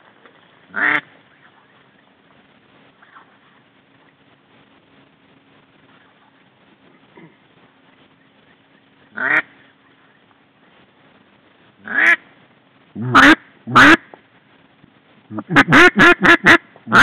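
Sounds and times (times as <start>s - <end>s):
duck call quacks: 0.7s - 1.1s, 9.1s - 9.5s, 11.8s - 12.2s, 13.0s - 14.1s, 15.3s - 17.0s.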